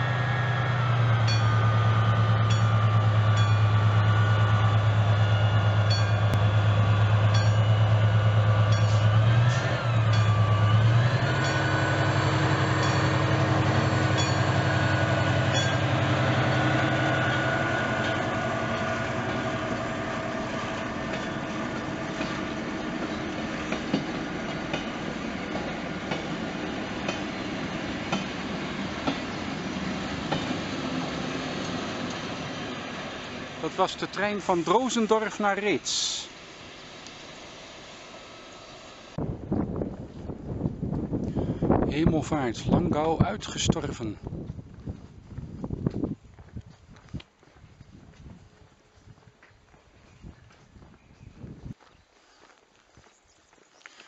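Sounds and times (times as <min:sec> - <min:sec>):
diesel locomotive droning: 0:00.0 - 0:44.0
train wheels clicking over rail joints: 0:01.0 - 0:05.0, 0:07.2 - 0:32.4.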